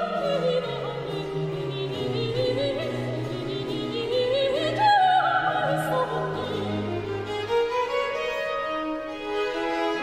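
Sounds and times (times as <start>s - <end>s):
woman singing operatically: 0.0s - 7.0s
string ensemble accompaniment: 0.0s - 10.0s.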